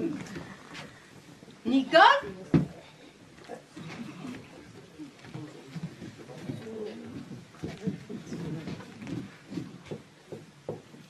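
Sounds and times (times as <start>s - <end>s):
dialogue: 0.0s - 10.5s.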